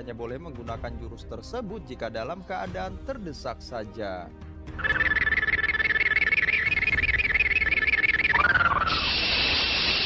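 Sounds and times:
warbling high electronic tone: 4.8 - 10.0
steady hiss: 8.7 - 10.0.

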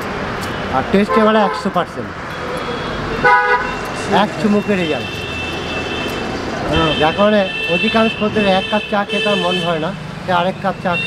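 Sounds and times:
street traffic hum: 0.0 - 11.0
vehicle horn toot: 2.3 - 3.8, 4.7 - 9.8.

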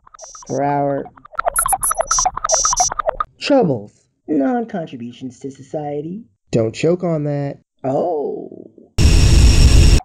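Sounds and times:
electronic blips and buzzes: 0.0 - 3.3, 9.0 - 10.0.

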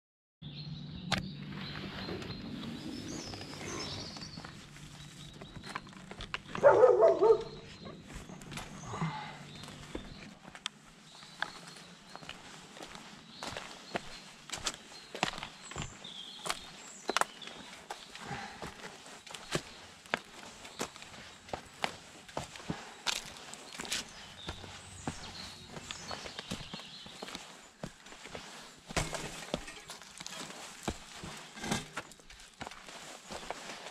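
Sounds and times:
footsteps on dirt and stone trail: 1.5 - 33.9
dog barking: 6.6 - 7.6.

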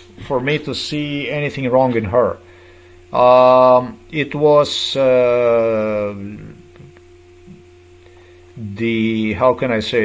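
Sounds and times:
low electrical hum: 0.0 - 10.0
man saying uh: 3.1 - 6.6, 8.6 - 10.0.

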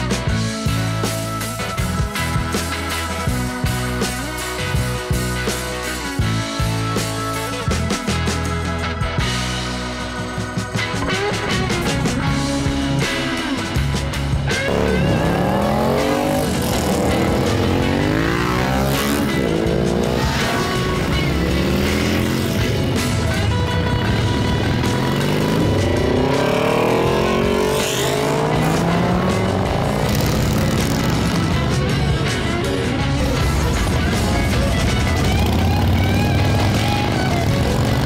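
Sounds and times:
rock music: 0.0 - 38.0
motorcycles accelerating past: 24.1 - 31.7.

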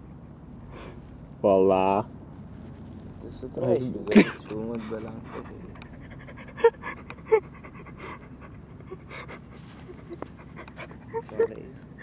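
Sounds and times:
breathy panting puffs: 4.1 - 12.0.

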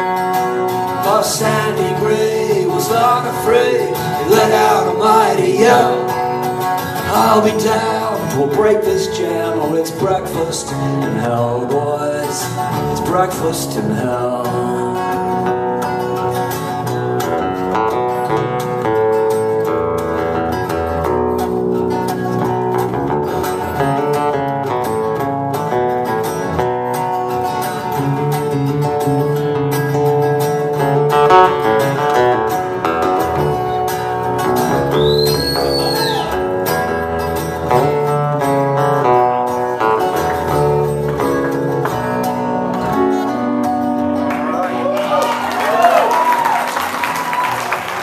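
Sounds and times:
acoustic guitar: 0.0 - 48.0
electric guitar: 0.0 - 48.0.

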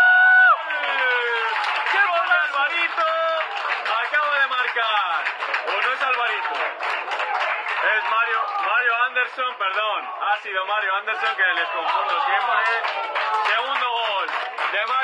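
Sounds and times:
clapping and applause: 0.0 - 15.0.

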